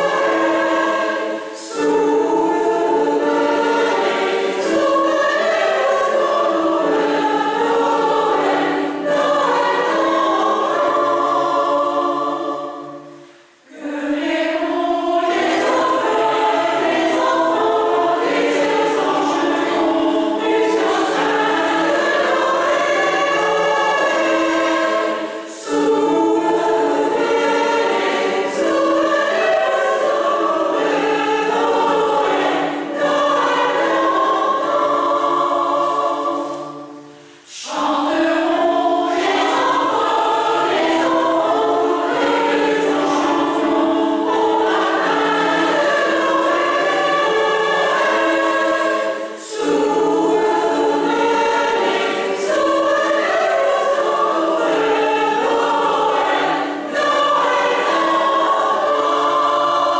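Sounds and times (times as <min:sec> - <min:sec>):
mixed choir singing: 0:00.0 - 0:59.9.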